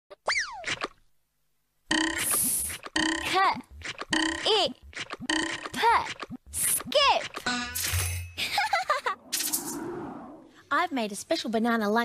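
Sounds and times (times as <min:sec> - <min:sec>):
cartoon boing: 0:01.9 - 0:03.4, 0:04.1 - 0:04.6.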